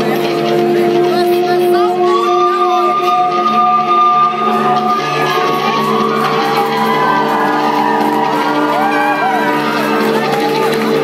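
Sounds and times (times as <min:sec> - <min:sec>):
live concert held chord: 0:00.0 - 0:11.0
audience shouting and whooping: 0:04.5 - 0:11.0.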